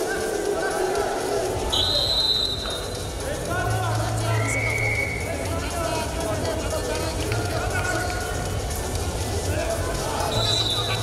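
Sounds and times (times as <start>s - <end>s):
referee's whistle: 1.7s - 2.9s, 4.4s - 5.3s, 10.3s - 11.0s.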